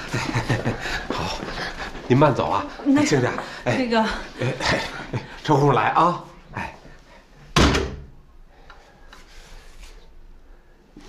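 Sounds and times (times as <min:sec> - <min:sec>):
door slamming shut: 0:07.6 - 0:08.1.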